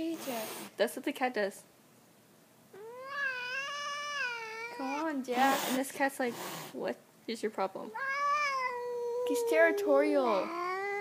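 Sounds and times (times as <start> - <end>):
cat yowling: 2.7 - 5.2, 7.9 - 11.0.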